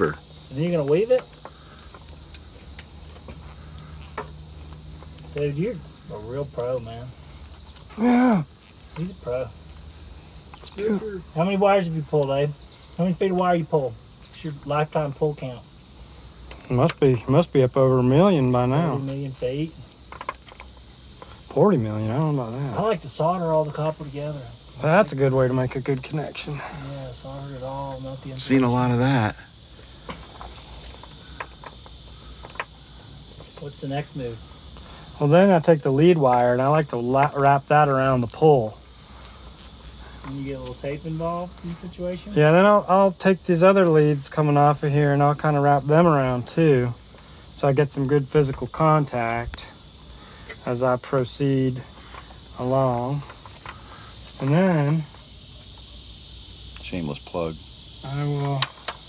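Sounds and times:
crickets chirping: 0:00.0 - 0:59.0
copper wire clicks and rustles: 0:00.8 - 0:11.2, 0:18.9 - 0:21.6, 0:29.6 - 0:35.4, 0:44.7 - 0:55.8.

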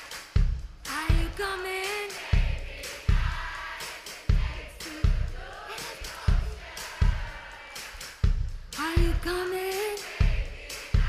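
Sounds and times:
kick drum beats: 0:00.0 - 0:01.6, 0:02.3 - 0:07.4, 0:08.2 - 0:09.4, 0:10.2 - 0:11.0.

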